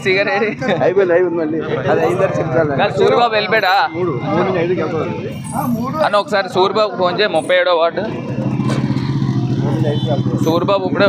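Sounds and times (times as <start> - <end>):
vehicle engine running: 7.5 - 11.0.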